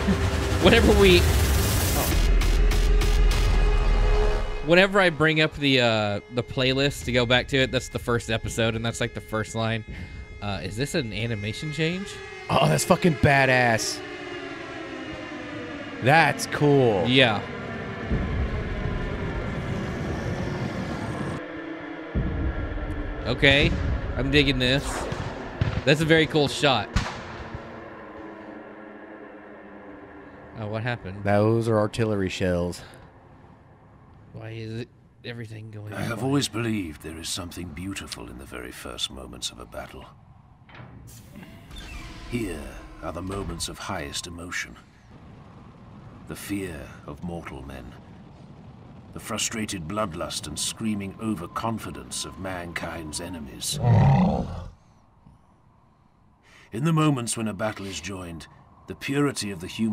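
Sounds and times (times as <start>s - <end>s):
deep battle cry: 53.7s - 54.7s.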